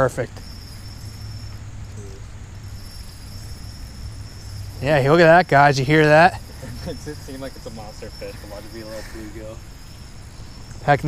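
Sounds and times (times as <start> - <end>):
high-pitched insect trill: 0.0 - 11.0.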